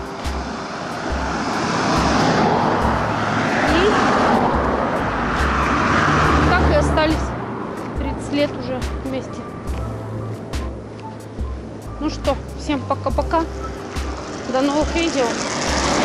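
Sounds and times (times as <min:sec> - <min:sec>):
another car passing: 0:00.0 - 0:12.6, 0:13.5 - 0:16.0
car passing on asphalt: 0:00.0 - 0:16.0.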